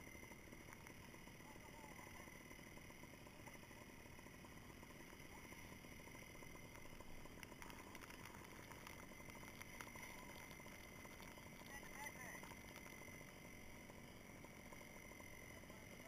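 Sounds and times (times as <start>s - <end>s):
faint clicks: 0.5s - 1.6s, 4.9s - 14.9s.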